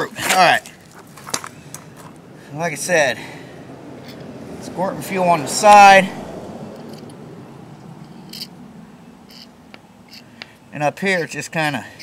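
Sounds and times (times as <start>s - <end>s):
man talking: 4.6s - 6.2s, 10.7s - 12.0s.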